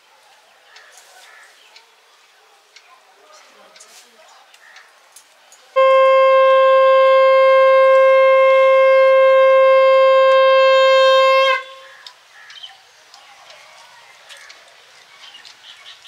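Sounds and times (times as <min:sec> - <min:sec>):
conch shell blast: 0:05.8 - 0:12.0.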